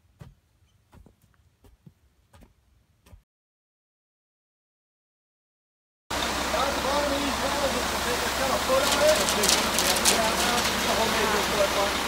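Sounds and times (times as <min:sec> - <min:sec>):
truck engine rumbling: 0:06.1 - 0:12.0
faint voices: 0:06.6 - 0:12.0.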